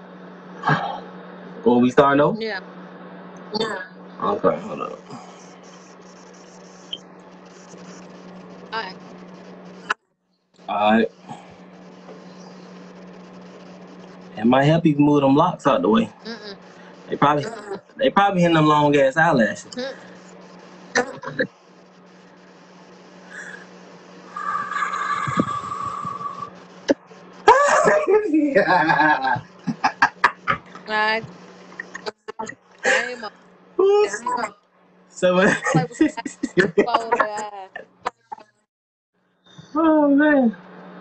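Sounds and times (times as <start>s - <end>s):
low hum with faint hiss: 0.0s - 10.0s, 10.6s - 38.6s, 39.5s - 41.0s
man laughing loudly: 21.0s - 21.5s, 27.5s - 30.9s, 31.8s - 33.2s, 35.2s - 38.4s.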